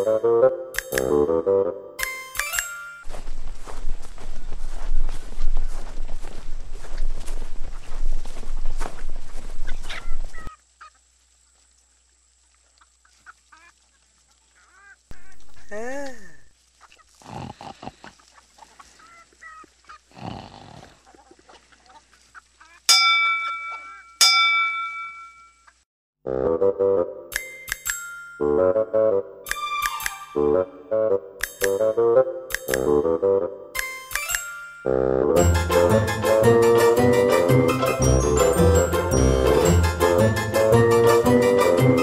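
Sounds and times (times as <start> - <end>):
cartoon music: 0.0 - 3.1, 26.3 - 27.5, 28.4 - 42.0
bell ringing: 2.0 - 3.1, 27.3 - 28.5, 33.8 - 35.9, 37.1 - 41.3
cartoon hens snoring and sighing: 17.2 - 18.2, 20.1 - 21.0.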